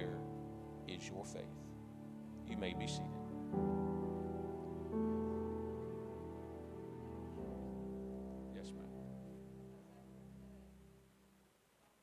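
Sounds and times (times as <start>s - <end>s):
keyboard playing soft chords: 0.0s - 11.4s.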